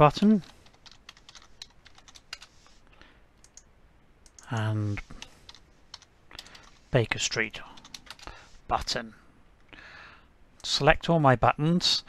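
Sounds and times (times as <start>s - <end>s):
computer keyboard typing: 0.0s - 2.6s, 3.4s - 6.9s, 7.7s - 8.3s.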